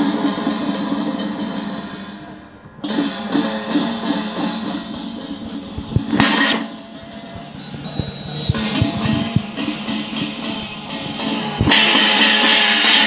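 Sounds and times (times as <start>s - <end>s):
cymbal crash: 0.0s - 7.5s, 8.6s - 13.0s
drum strikes: 0.0s - 13.0s
ringing hand gongs: 6.2s - 13.0s.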